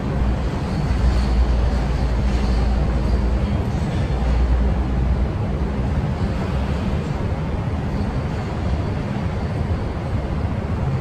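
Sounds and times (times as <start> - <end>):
low city rumble: 0.0 - 11.0.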